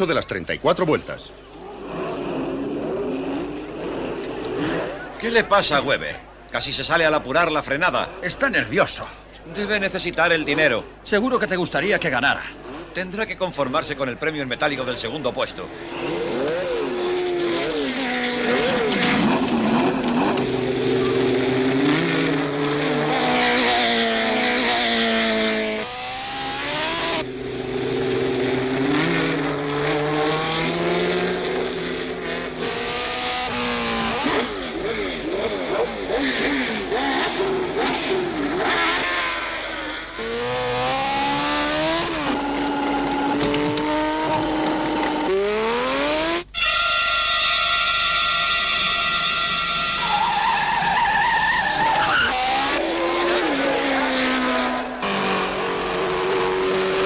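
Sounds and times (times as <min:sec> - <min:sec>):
race car engines at high revs: 0:01.4 - 0:06.4, 0:09.4 - 0:46.5, 0:48.8 - 0:57.0.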